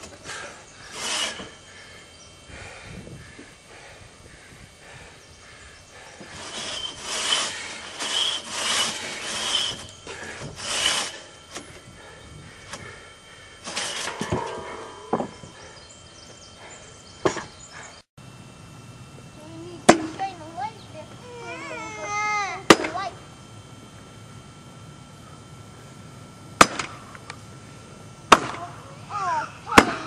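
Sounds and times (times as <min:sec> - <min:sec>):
hand tool rasping wood: 0:00.3 - 0:01.6, 0:06.2 - 0:11.3, 0:13.6 - 0:14.4
sharp knocks: 0:13.9 - 0:15.6.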